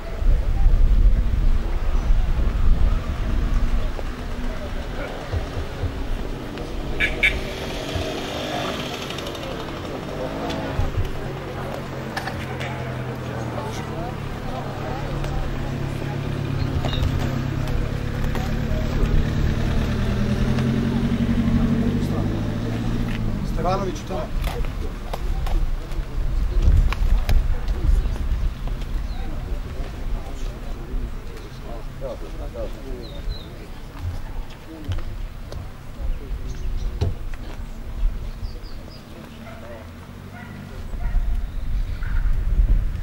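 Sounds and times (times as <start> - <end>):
steady low rumble: 0.0 - 8.4
faint crowd talk: 0.0 - 43.0
indistinct voices: 0.0 - 43.0
vehicle engine running: 0.5 - 43.0.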